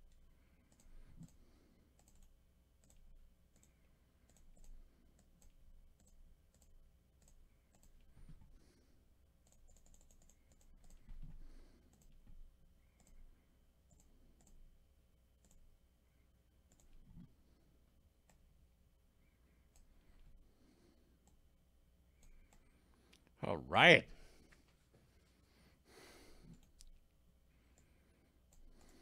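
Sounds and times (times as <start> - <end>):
computer mouse and key clicks: 0.0 - 8.8, 9.4 - 14.8, 15.4 - 15.8, 16.6 - 17.4, 18.2 - 18.5, 19.2 - 20.4, 21.2 - 21.5, 22.2 - 23.2, 26.4 - 29.0.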